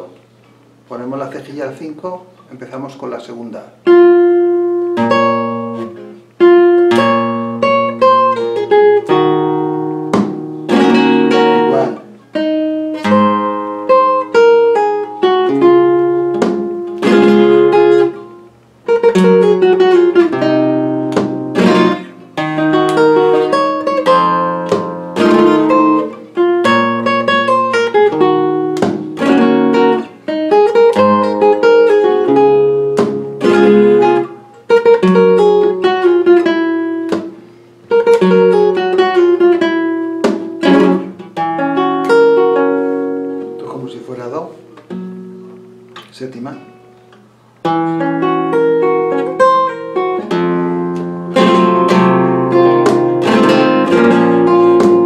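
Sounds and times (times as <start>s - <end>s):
solo flamenco guitar: 3.8s - 55.0s.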